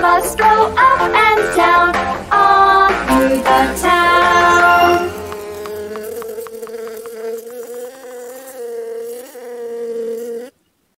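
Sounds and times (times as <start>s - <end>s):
cartoon bee buzzing: 3.1s - 10.6s.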